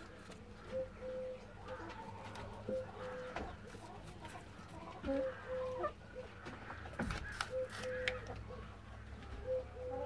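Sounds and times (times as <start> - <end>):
bird calling: 0.0 - 3.9, 5.0 - 10.0.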